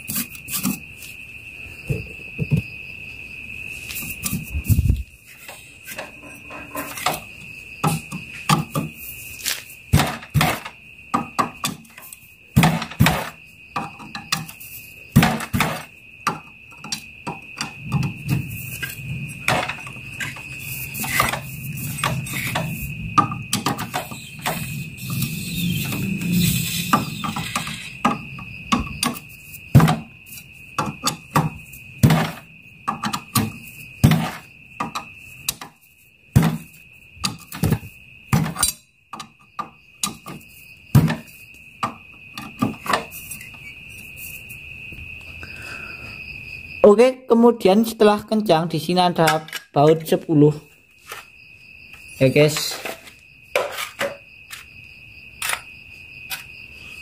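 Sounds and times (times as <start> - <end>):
steady high trill: 24.1 - 28.0.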